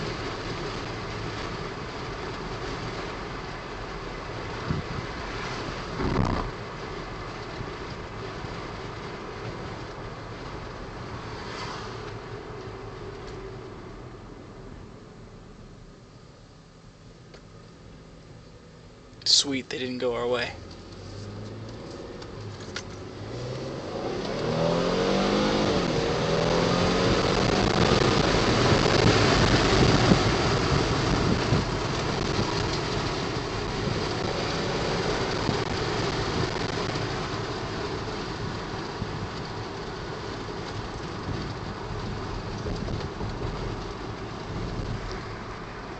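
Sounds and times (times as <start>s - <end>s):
tyre and wind noise: 0.0s - 13.7s, 20.7s - 45.9s
car engine accelerating: 0.0s - 14.6s, 19.2s - 45.9s.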